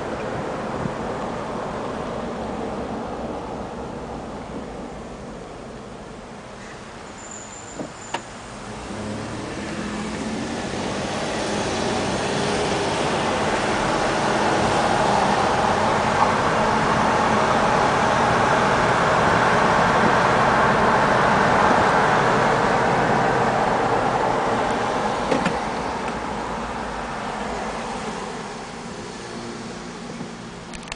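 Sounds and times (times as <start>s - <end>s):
car road and wind noise: 0.0s - 30.9s.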